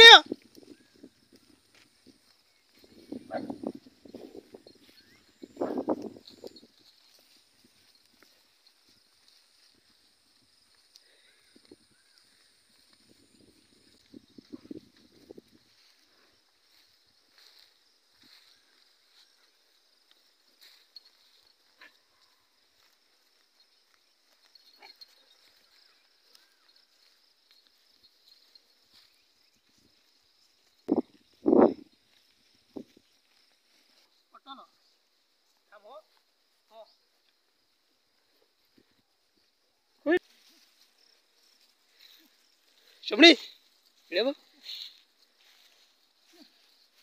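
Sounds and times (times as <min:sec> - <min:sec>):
hoof steps: 0:00.0 - 0:47.0.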